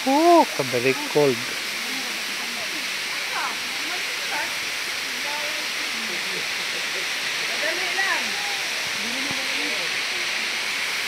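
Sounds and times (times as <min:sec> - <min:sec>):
faint voices talking: 0:00.0 - 0:11.0
waterfall rushing: 0:00.0 - 0:11.0.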